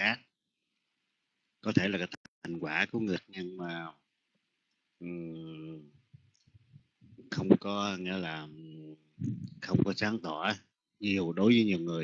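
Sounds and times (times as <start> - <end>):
man's drawn-out syllable: 8.2 - 9.8.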